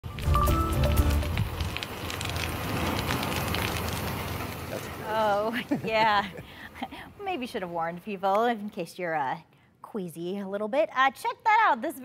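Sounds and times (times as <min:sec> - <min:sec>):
musical sting with bass hit: 0:00.0 - 0:01.5
dense crackling of crushed crickets: 0:01.4 - 0:04.9.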